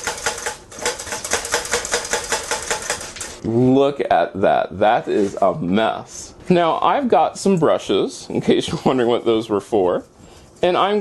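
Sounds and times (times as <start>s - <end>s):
toaster rattling on metal tray: 0.0s - 3.4s.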